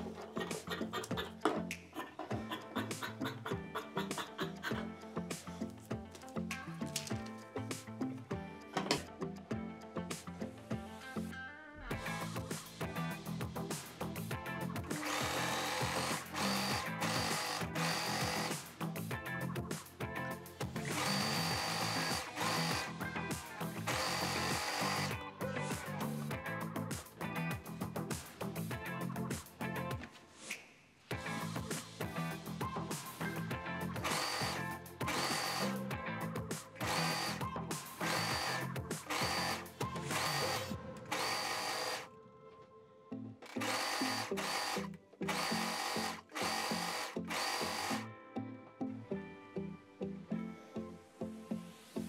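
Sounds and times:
background music: 0:00.0 - 0:52.0
overlock machine stitching: 0:15.0 - 0:18.6, 0:20.9 - 0:22.9, 0:23.9 - 0:25.1, 0:43.5 - 0:48.0.

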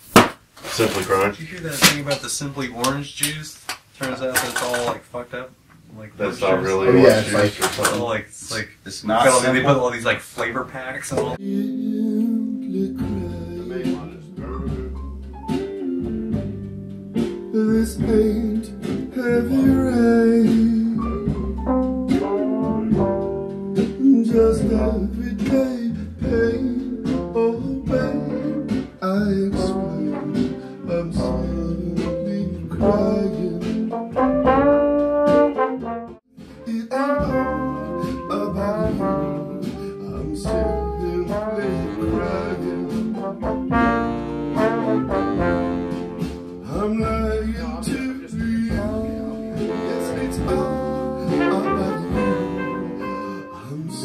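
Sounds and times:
horn section playing: 0:06.4 - 0:07.6, 0:17.9 - 0:25.9, 0:26.7 - 0:31.8, 0:32.4 - 0:47.9, 0:48.6 - 0:54.0.

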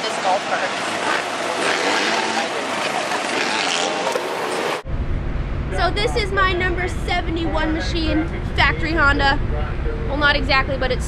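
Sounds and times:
golf cart tyres on dirt: 0:00.6 - 0:04.9
rushing air: 0:03.9 - 0:10.1.

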